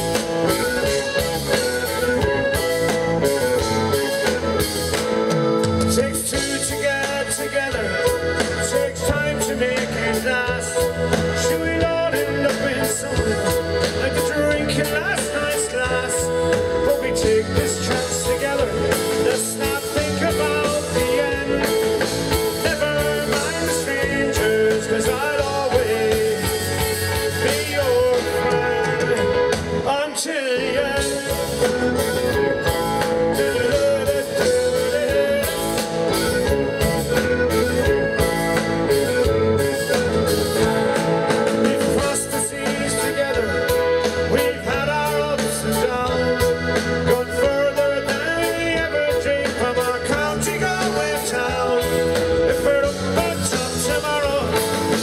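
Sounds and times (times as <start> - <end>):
drum kit beat: 0.0 - 55.0
folk-rock band playing: 0.0 - 55.0.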